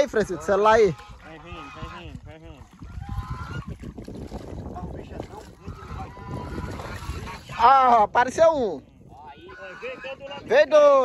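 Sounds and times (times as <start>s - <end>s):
water splashing and sloshing: 0.0s - 10.6s.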